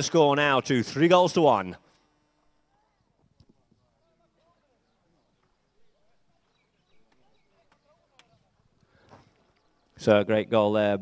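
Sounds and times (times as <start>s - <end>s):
faint distant voices: 2.4s - 10.1s.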